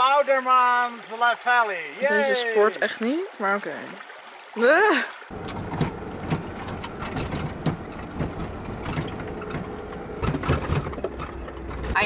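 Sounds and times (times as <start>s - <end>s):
tyres rumbling on gravel: 5.3s - 12.0s.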